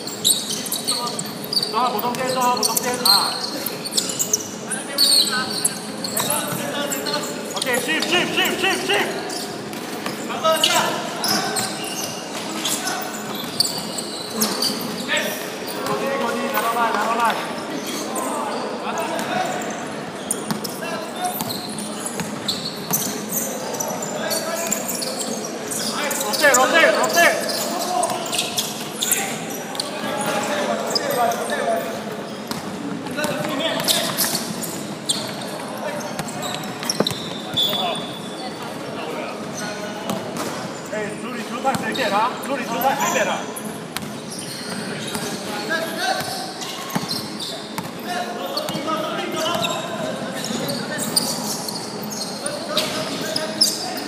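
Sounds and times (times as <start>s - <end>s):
basketball bouncing on wooden court: 22.2s - 23.1s, 32.5s - 32.7s, 44.0s - 44.2s, 46.2s - 48.0s.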